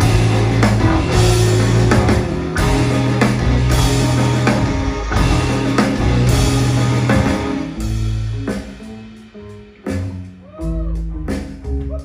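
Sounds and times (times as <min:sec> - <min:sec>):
loud drum hit: 0:00.0 - 0:09.1
rock band playing live: 0:00.0 - 0:12.0.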